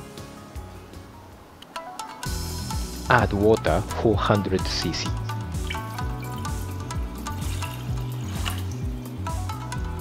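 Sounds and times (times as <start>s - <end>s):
background music: 0.0s - 10.0s
water poured into saucepan: 7.3s - 8.9s.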